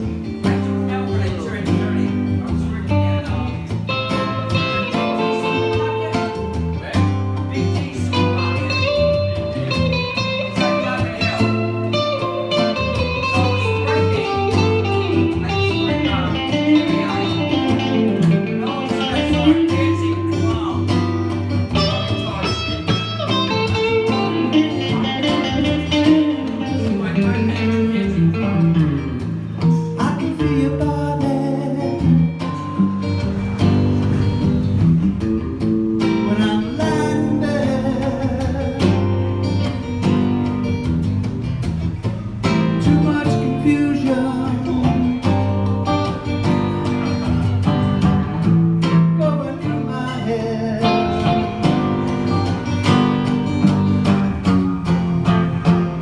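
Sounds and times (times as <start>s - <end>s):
acoustic guitar chords: 0.0s - 56.0s
electric guitar lead with bends: 0.0s - 56.0s.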